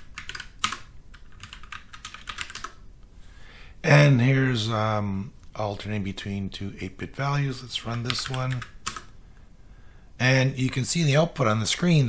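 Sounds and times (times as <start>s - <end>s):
keyboard typing clicks: 0.0s - 2.8s, 8.0s - 9.1s.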